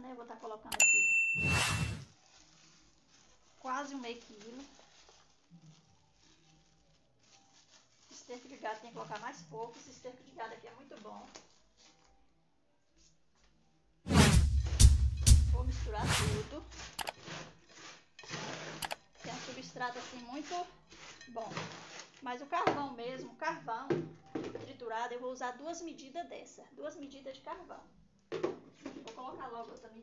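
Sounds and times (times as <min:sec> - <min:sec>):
trowel scraping through soil: 0:01.4 - 0:02.6, 0:15.6 - 0:22.2
plastic bag rustling: 0:01.7 - 0:12.2, 0:16.3 - 0:22.7.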